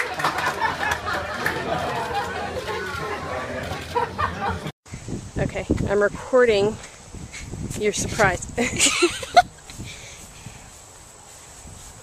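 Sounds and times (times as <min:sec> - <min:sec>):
chatter of people talking: 0:00.4 - 0:04.7.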